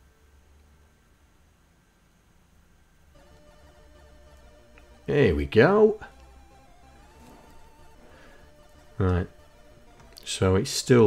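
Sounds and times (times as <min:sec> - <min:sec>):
faint chiptune game music: 0:00.0 - 0:11.0.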